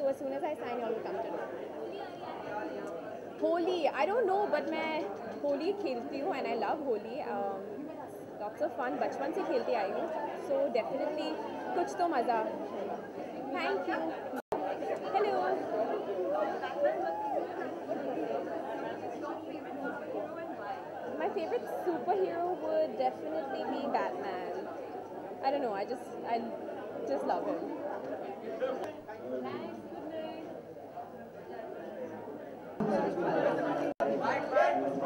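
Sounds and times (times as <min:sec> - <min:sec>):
people chattering: 0:00.0 - 0:35.0.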